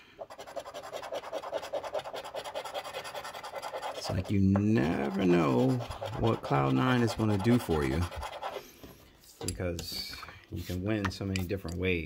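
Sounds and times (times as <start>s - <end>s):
coin scratching lottery ticket: 0.2s - 8.6s.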